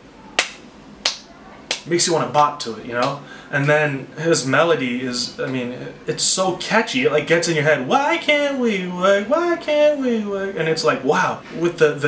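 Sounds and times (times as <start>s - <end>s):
finger snaps: 0.4s - 1.9s.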